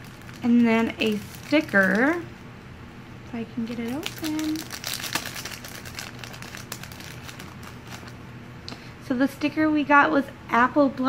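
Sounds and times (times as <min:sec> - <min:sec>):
wrapper crinkling: 0:00.0 - 0:02.3, 0:03.7 - 0:08.2.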